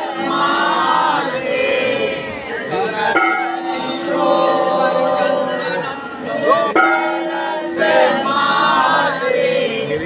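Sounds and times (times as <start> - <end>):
bells ringing rapidly: 0.0 - 10.0
group of voices singing a hymn: 0.0 - 10.0.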